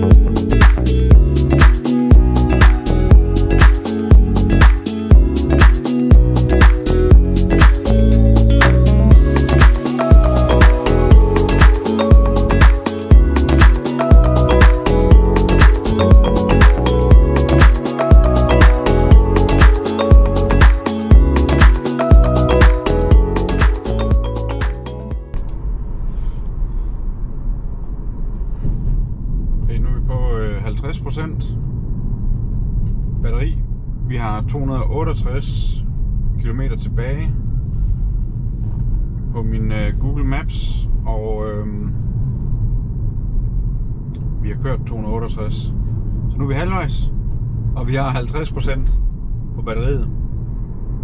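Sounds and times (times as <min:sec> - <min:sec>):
music: 0:00.0 - 0:25.6
road and tyre rumble in car: 0:25.3 - 0:51.0.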